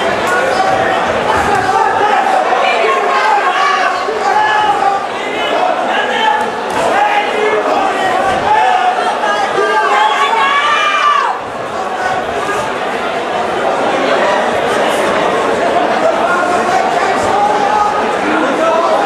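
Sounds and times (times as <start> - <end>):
crowd shouting in large hall: 0.0 - 19.0.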